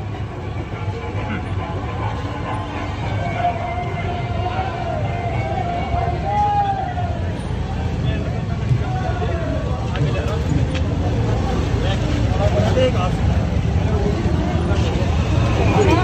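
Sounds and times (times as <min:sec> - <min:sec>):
crowd voices and calls: 0:00.0 - 0:16.0.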